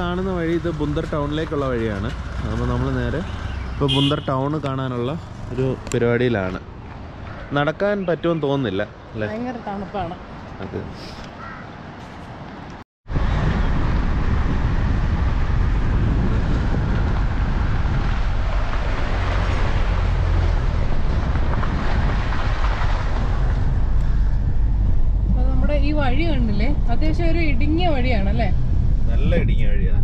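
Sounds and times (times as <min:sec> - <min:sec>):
road and wind noise in car: 0:00.0 - 0:30.0.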